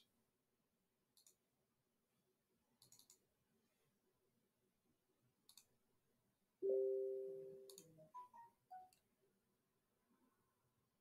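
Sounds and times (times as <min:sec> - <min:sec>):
faint computer mouse clicks: 0:01.1 - 0:01.4, 0:02.8 - 0:03.3, 0:05.4 - 0:05.8, 0:07.6 - 0:08.0.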